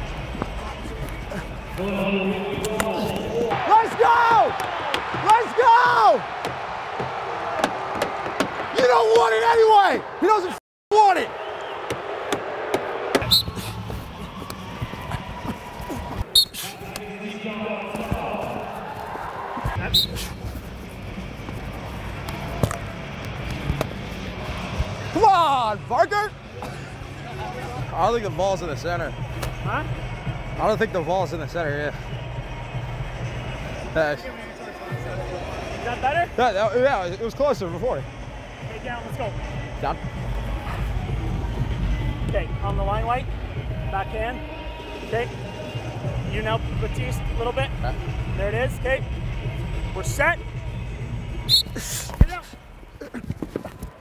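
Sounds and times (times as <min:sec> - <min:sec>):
arena crowd voices: 0:00.0 - 0:54.0
crowd rumble: 0:11.7 - 0:25.2.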